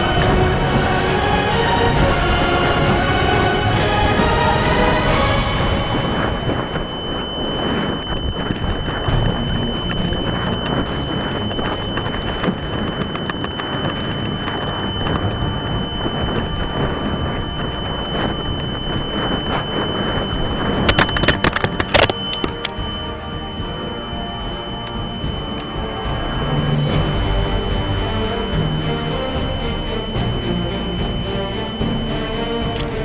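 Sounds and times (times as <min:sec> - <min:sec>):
steady high whine: 0:00.0 - 0:33.0
wind noise on camera: 0:03.7 - 0:33.0.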